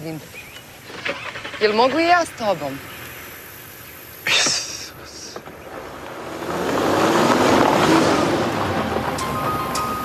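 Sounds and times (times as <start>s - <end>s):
car pulling away on gravel: 5.4s - 10.0s.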